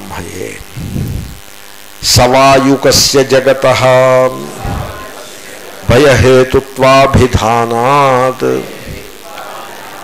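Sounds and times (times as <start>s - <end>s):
steady background hiss: 0.0s - 10.0s
man lecturing: 2.0s - 4.8s, 5.8s - 8.8s.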